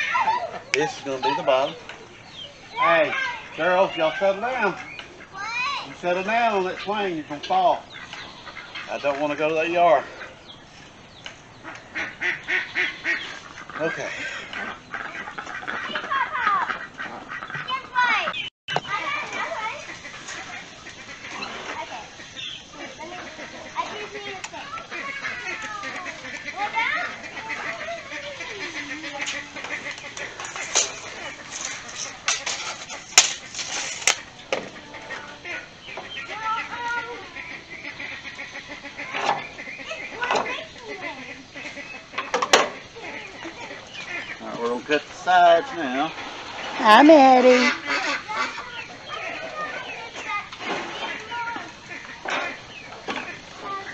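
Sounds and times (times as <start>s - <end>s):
chickens clucking: 0.0s - 53.9s
ducks quacking: 0.0s - 53.9s.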